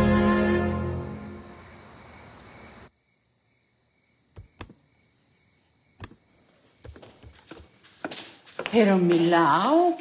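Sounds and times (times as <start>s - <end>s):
crickets chirping: 0.0s - 9.9s.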